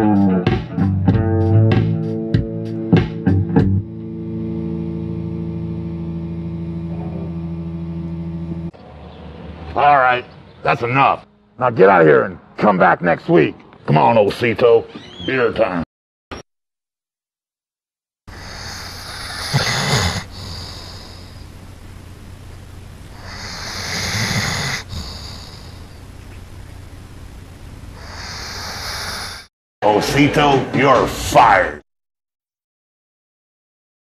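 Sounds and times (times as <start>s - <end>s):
guitar and bass chord ringing: 0.0s - 8.8s
dog snoring: 18.3s - 21.6s, 23.1s - 26.1s, 27.9s - 29.5s
low hum and hiss: 18.3s - 29.3s.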